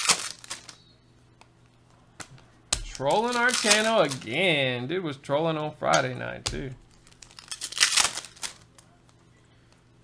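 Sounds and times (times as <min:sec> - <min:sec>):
foil wrapper crinkling: 0:00.0 - 0:00.8, 0:02.9 - 0:04.5, 0:06.9 - 0:08.8.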